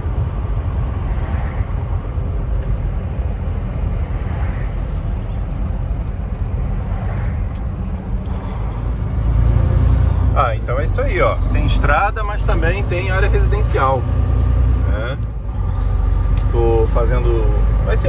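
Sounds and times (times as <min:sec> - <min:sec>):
diesel truck engine rumble: 0:00.0 - 0:18.0
road noise: 0:00.0 - 0:18.0.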